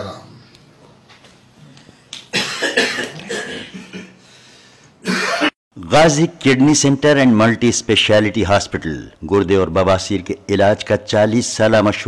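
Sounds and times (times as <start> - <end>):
man coughing: 2.3 - 4.2, 5.0 - 5.6.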